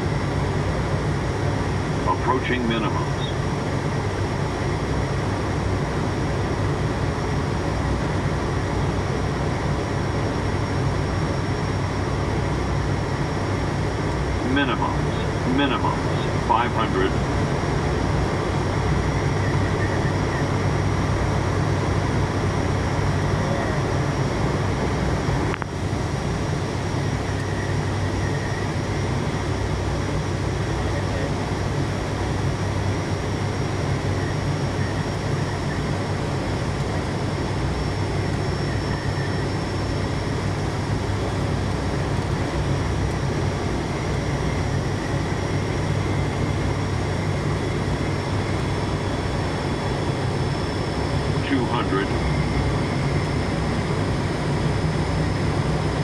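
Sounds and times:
turboprop engines humming: 0:00.0 - 0:56.0.

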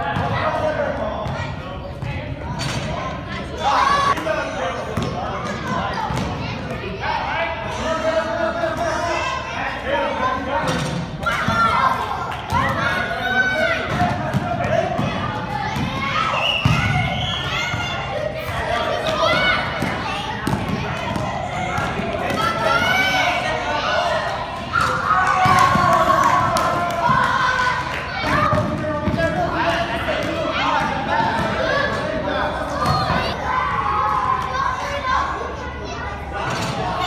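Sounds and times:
children's voices and shouts: 0:00.0 - 0:04.5, 0:05.2 - 0:29.0, 0:29.6 - 0:37.0.

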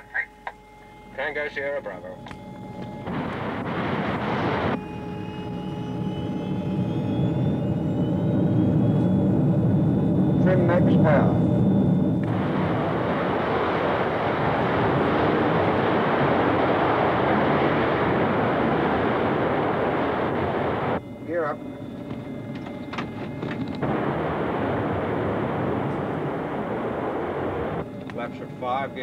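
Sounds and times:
radio voice: 0:00.0 - 0:00.6, 0:10.4 - 0:11.4
jet engines roaring: 0:01.2 - 0:29.0
cockpit noise: 0:09.3 - 0:29.0.

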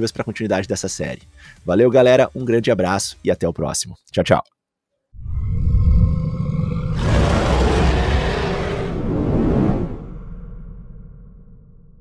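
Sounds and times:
rushing whoosh: 0:05.2 - 0:11.6
deep rumbling roar: 0:05.2 - 0:12.0.

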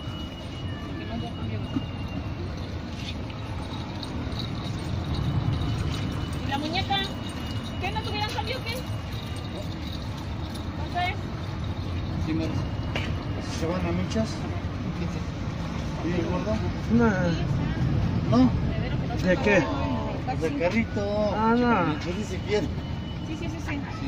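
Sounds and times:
low rumble of traffic: 0:00.0 - 0:24.0.

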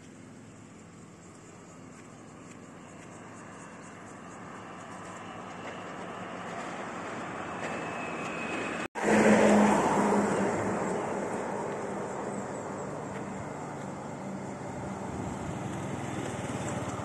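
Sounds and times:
car passing: 0:00.0 - 0:17.0
vehicle passing close by: 0:01.8 - 0:17.0.

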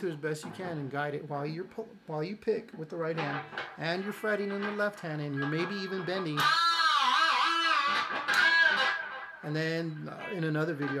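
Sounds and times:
electric guitar note bending: 0:03.2 - 0:10.1
electric guitar note wavering: 0:05.4 - 0:09.5.

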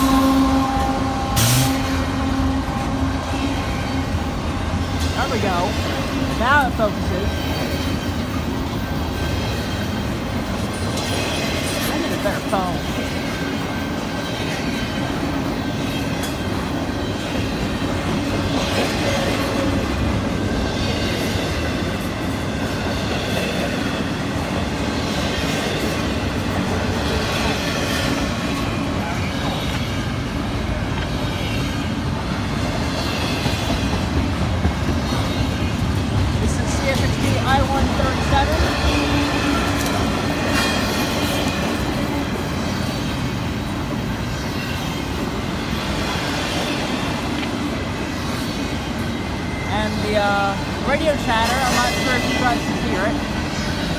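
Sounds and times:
freight train passing: 0:00.0 - 0:53.9
wheels clickety-clack on rail: 0:00.0 - 0:53.9.

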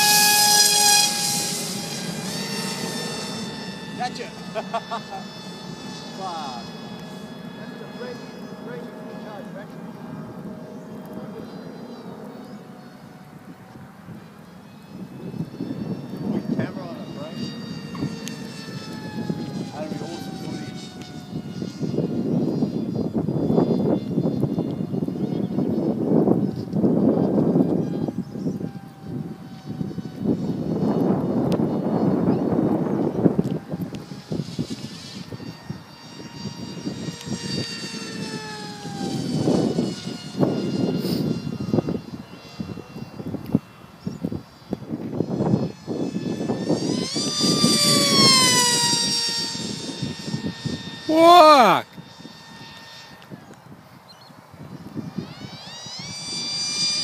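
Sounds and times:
model jet propeller whining: 0:00.0 - 0:57.0.

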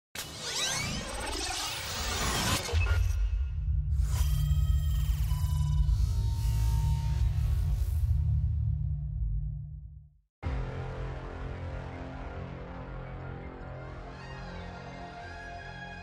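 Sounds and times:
deep bass drone: 0:03.4 - 0:14.0.

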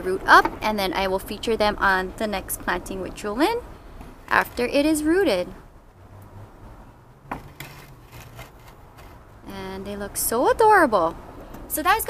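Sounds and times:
low steady hum: 0:00.0 - 0:12.0.

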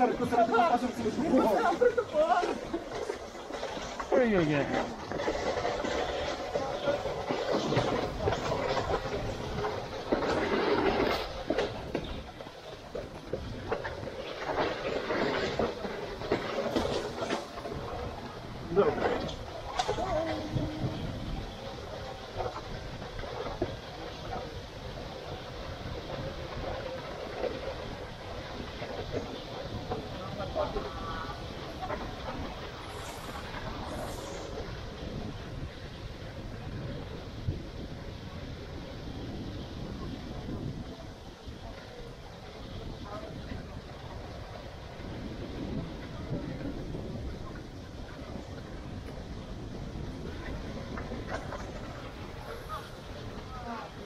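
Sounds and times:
wooden runners scraping asphalt: 0:00.0 - 0:37.1, 0:42.6 - 0:54.0.

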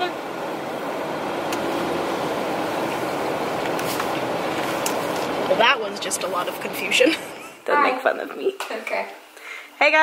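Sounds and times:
car cabin noise: 0:00.0 - 0:07.4.

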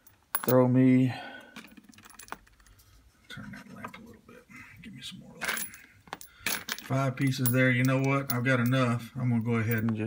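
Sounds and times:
brass cartridge cases clinking: 0:00.0 - 0:00.6, 0:01.5 - 0:02.8, 0:05.4 - 0:10.0.

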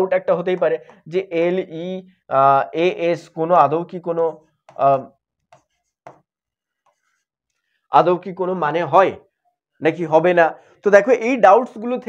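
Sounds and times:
man speaking: 0:00.0 - 0:05.1, 0:07.9 - 0:09.2, 0:09.8 - 0:12.0
pen writing on a board: 0:04.5 - 0:07.6.

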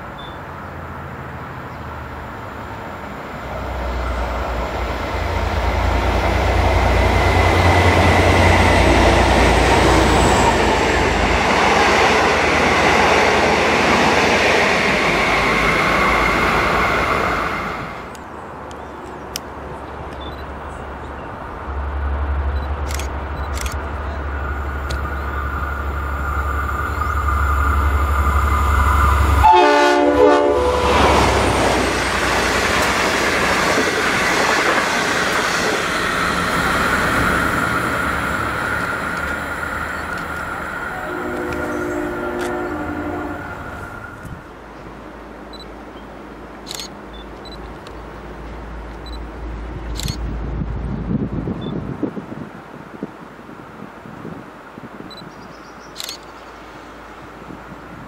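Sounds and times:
train passing: 0:00.0 - 0:54.9
train approaching rumble: 0:00.0 - 0:55.0
sharp clicks: 0:22.6 - 0:23.9, 0:46.6 - 0:48.0, 0:49.9 - 0:50.2, 0:56.0 - 0:56.3
locomotive horn: 0:27.4 - 0:31.3, 0:40.8 - 0:44.0.

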